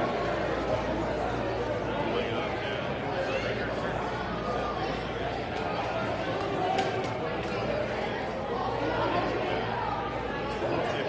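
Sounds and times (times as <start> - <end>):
crowd chatter in a large hall: 0.0 - 11.0.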